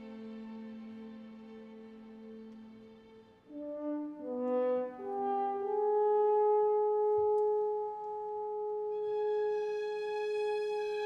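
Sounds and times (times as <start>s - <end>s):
french horn playing: 3.5s - 9.5s.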